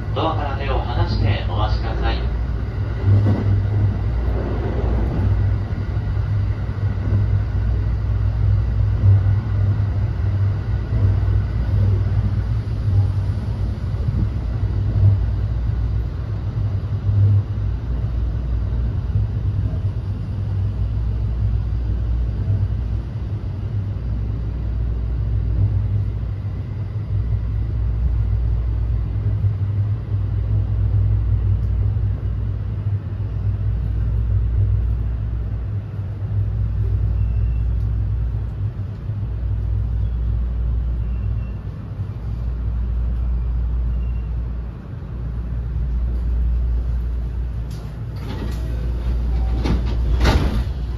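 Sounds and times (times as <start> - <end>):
train car body hum: 0.0 - 50.9
train wheels rumbling on rails: 0.0 - 50.9.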